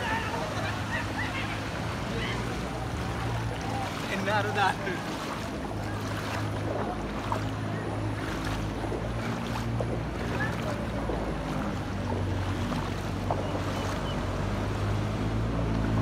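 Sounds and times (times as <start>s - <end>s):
water sloshing around wading legs: 0.0s - 16.0s.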